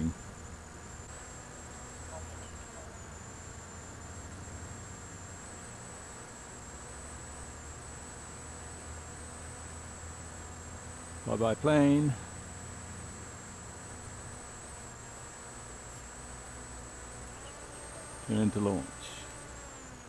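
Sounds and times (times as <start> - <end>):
electric motor and propeller buzzing: 0.0 - 20.0.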